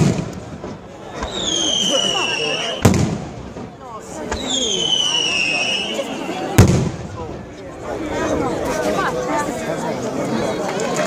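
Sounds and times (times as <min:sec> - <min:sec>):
firework whistles falling in pitch: 0:01.2 - 0:02.9, 0:04.4 - 0:06.6.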